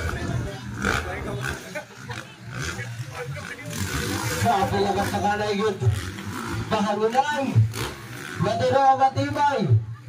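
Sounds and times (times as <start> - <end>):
dirt bike engines running: 0.0 - 10.0
people's voices: 0.0 - 10.0.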